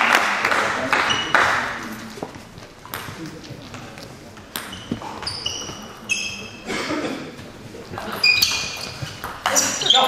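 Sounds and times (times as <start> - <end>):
sports shoes squeaking on floor: 1.0 - 1.5, 2.1 - 10.0.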